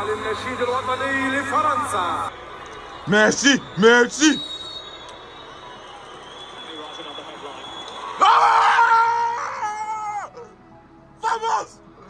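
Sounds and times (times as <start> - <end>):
man yelling in celebration: 3.1 - 4.4, 11.2 - 11.8.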